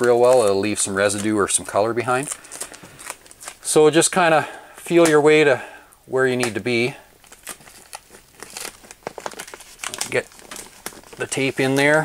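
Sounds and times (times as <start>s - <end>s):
plastic sheet crinkling: 0.0s - 4.1s, 6.3s - 12.0s.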